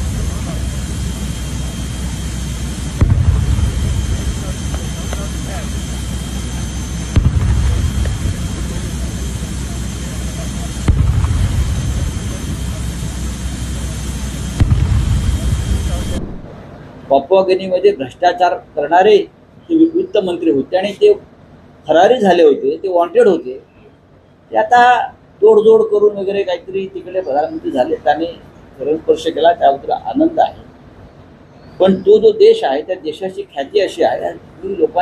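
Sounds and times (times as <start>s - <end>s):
jet aircraft engine whine and rumble: 0.0s - 17.1s.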